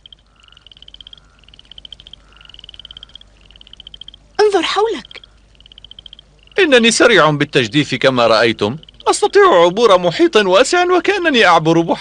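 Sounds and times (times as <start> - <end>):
rapidly pulsed animal trills: 0.0 - 7.3, 7.9 - 9.6.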